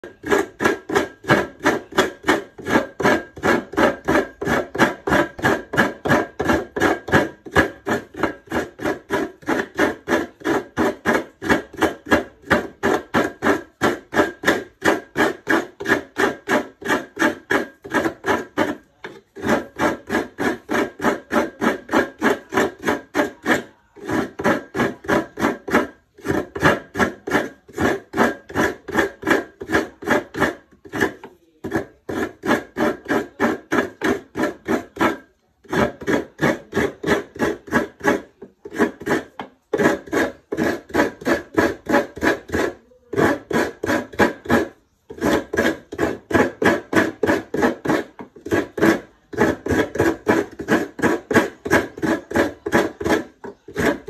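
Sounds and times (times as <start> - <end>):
coconut rasping on grater: 0.0 - 54.0.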